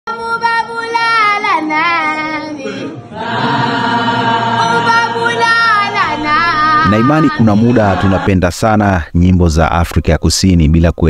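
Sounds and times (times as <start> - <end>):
girl singing unaccompanied: 0.1 - 3.0, 4.5 - 8.1
group of voices singing: 0.1 - 8.6.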